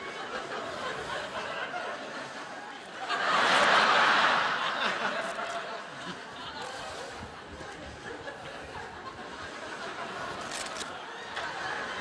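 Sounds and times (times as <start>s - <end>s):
audience laughing: 0.0s - 12.0s.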